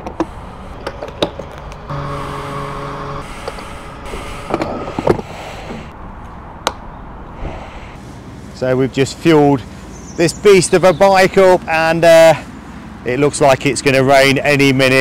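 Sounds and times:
fuel pump humming: 0.0s - 6.0s.

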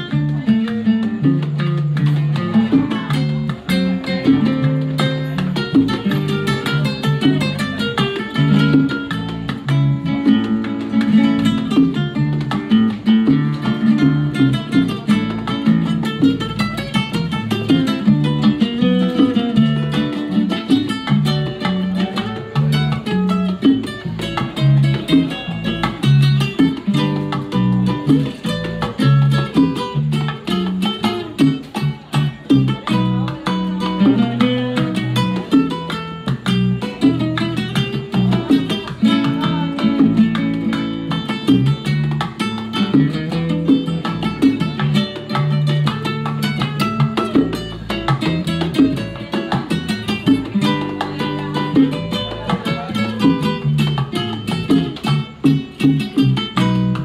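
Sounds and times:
acoustic guitar melody: 0.0s - 57.0s
bongos: 0.0s - 57.0s
electric bass line: 0.0s - 57.0s.

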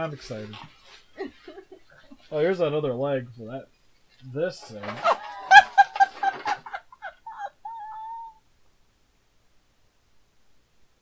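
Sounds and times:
woman cackling laughter: 1.2s - 2.0s, 5.0s - 8.4s
woman squealing: 7.1s - 8.4s.

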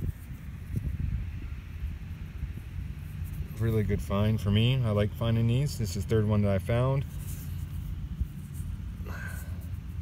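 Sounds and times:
wind buffeting microphone: 0.0s - 4.5s.

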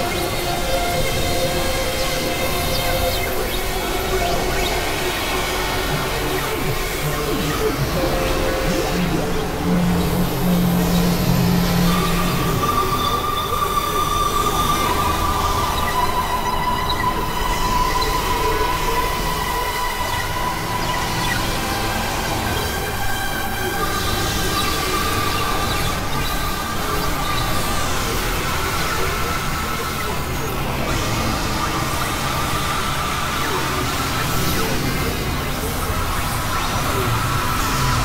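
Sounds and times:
experimental electronic noise music: 0.0s - 38.0s.

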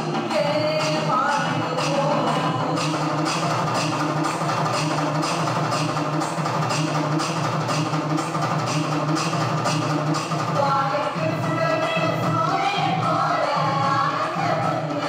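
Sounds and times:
steady drum beat: 0.0s - 15.0s.

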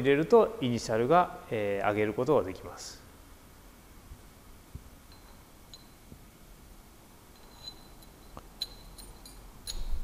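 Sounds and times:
faint clicks of steel parts: 7.3s - 10.0s.

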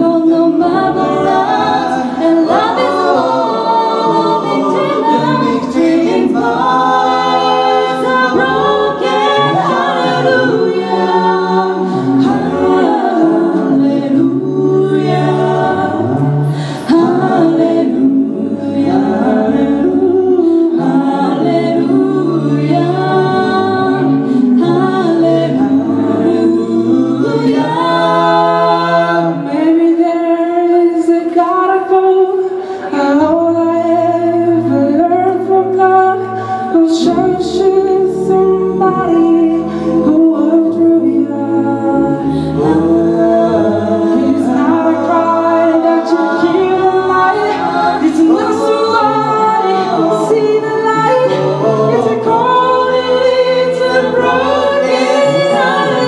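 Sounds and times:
a cappella group singing: 0.0s - 56.0s
lead vocal melody: 0.0s - 56.0s.

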